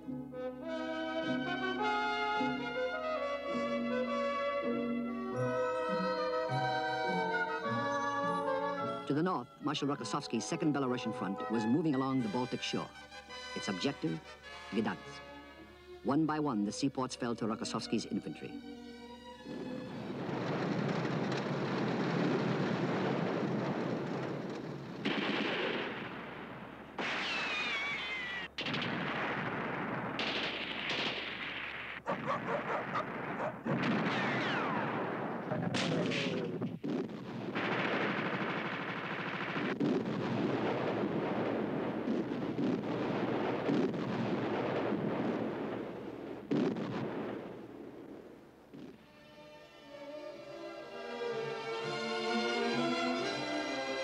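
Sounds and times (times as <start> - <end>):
machine-gun fire: 20.2 - 48.3
rifle fire: 20.2 - 49.0
falling whistles: 27.1 - 28.6.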